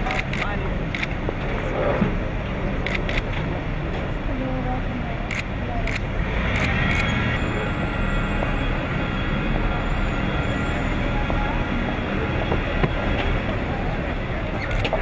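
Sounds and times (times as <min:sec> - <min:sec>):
vehicle and aircraft engines: 0:00.0 - 0:15.0
voices murmuring: 0:00.0 - 0:15.0.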